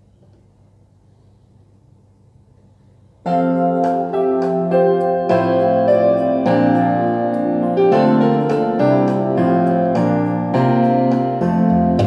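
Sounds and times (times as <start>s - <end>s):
electric piano and string chords: 3.3s - 12.0s.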